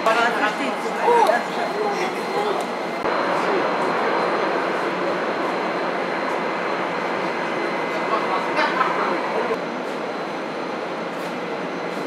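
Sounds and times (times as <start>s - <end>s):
jet airliner engines rushing: 0.0s - 12.0s.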